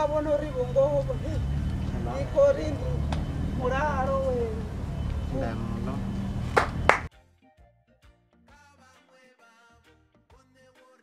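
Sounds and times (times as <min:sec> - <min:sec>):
low hum: 0:00.0 - 0:07.1.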